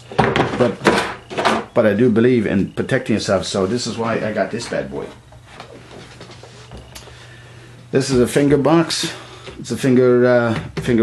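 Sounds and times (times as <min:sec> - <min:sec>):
faint rubbing and handling noise: 0:03.2 - 0:09.8.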